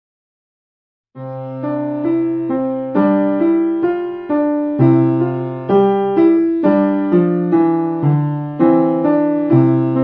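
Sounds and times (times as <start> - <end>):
upright piano playing: 1.2 - 10.0.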